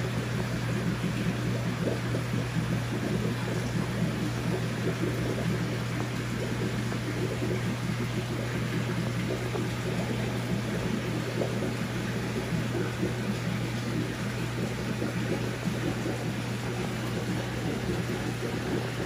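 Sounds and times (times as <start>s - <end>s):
aquarium equipment humming: 0.0s - 19.0s.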